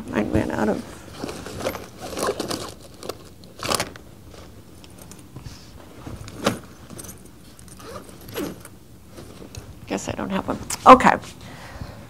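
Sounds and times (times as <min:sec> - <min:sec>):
small objects clinking and rustling: 0:01.0 - 0:05.4, 0:06.0 - 0:09.8.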